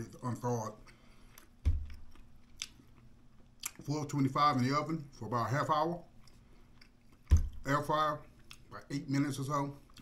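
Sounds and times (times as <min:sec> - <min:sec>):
dull thump on table: 0:01.6 - 0:01.9, 0:07.3 - 0:07.6.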